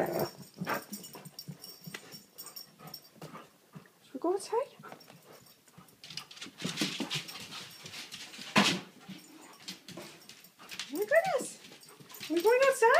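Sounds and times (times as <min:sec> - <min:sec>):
scuffling and knocks: 0:04.8 - 0:12.9.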